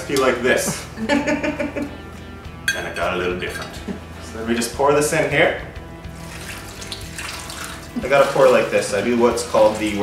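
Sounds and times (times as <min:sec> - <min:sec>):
liquid pouring into plastic bag: 0:06.2 - 0:10.0.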